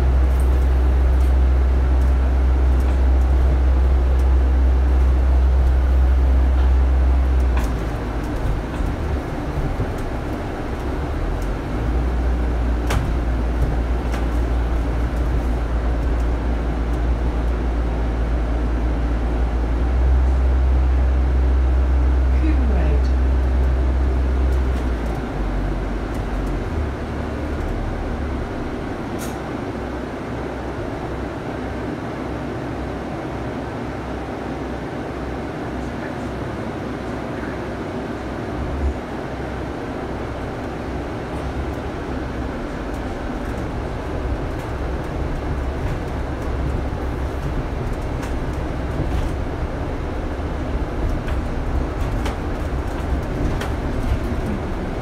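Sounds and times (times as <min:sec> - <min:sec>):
bodywork rattles and ticks: 0:00.0 - 0:17.6, 0:23.4 - 0:29.5, 0:40.6 - 0:55.0
bus engine and road rumble: 0:00.0 - 0:55.0.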